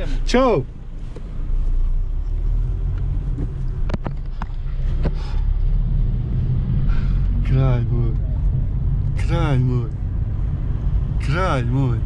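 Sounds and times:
car engine from inside cabin: 0.0 - 12.0
road rumble: 0.0 - 12.0.

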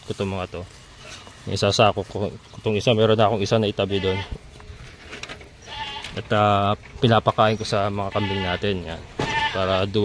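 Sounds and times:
goat bleating: 3.8 - 4.5, 5.6 - 6.4, 7.8 - 9.9.

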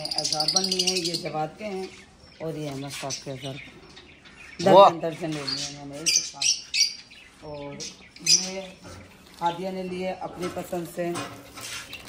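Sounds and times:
bird chirping rapidly: 0.0 - 11.0.

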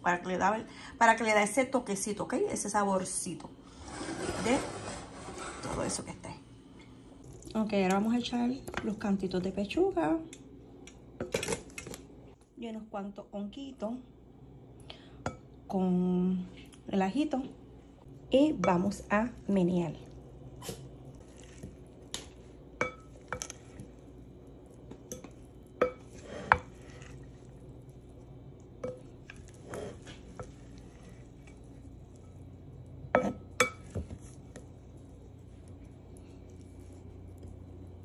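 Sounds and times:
utensil scraping ceramic bowl: 3.7 - 6.0, 25.1 - 27.5, 28.8 - 32.4
moist pasta shuffling: 18.3 - 38.0.

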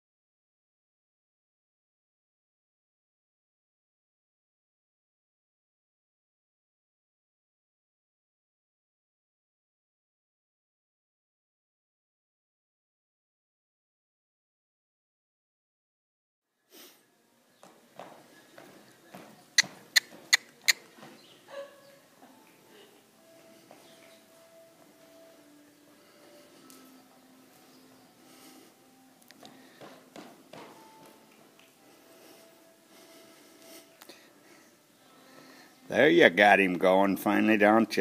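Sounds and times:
horse hooves on soft dirt: 17.5 - 25.4, 29.3 - 32.4.

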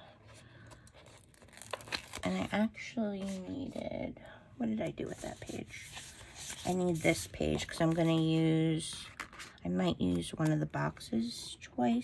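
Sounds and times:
paper rustling and crinkling: 0.7 - 2.6, 5.1 - 9.6.

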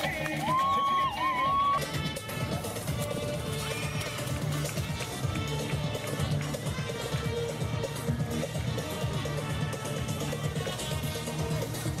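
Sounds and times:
music playing: 0.0 - 12.0.

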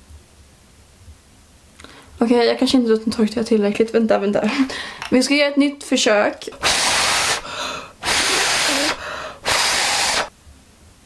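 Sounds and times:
person blowing air: 6.6 - 10.3.

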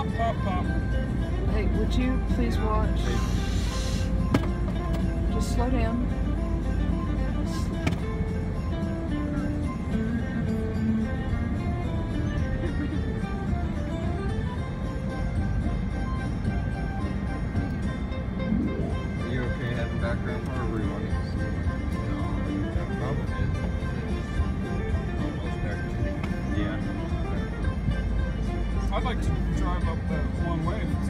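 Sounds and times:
car rumbling on road: 0.0 - 31.0
holiday music on car radio: 0.0 - 31.0.

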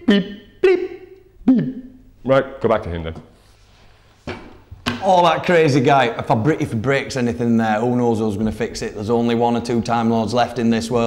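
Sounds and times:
man talking: 0.0 - 3.4, 4.9 - 11.0.

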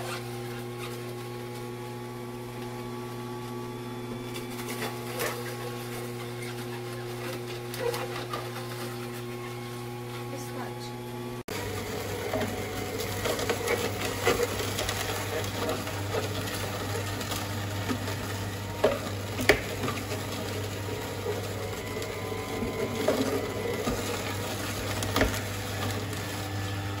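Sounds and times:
juicer humming: 0.0 - 27.0
celery crackling and snapping: 11.5 - 27.0.

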